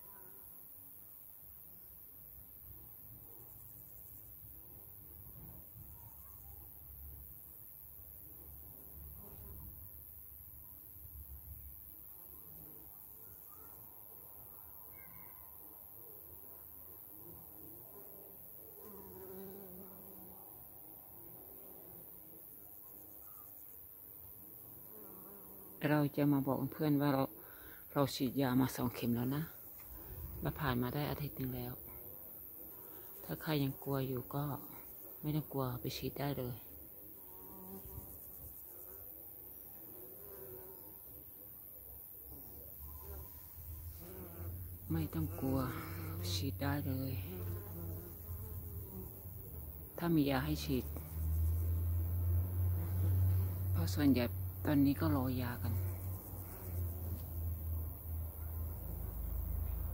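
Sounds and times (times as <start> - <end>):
flying insects buzzing: 7.5 - 59.9
honeybees buzzing: 42.6 - 58.1.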